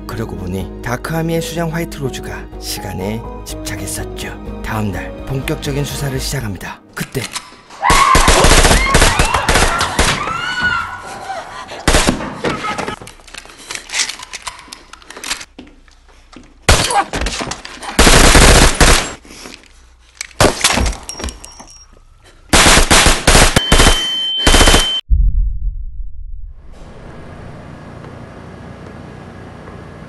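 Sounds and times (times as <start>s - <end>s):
automatic gunfire: 8.2s - 10.1s, 18.0s - 19.2s, 22.5s - 24.9s
high ringing tone: 23.6s - 25.0s
low rumble: 25.1s - 28.2s.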